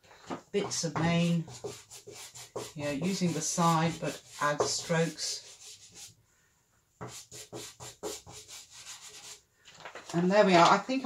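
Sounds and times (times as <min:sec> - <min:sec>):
pastel stick rubbing on paper: 0:00.6 - 0:06.2, 0:07.0 - 0:09.4.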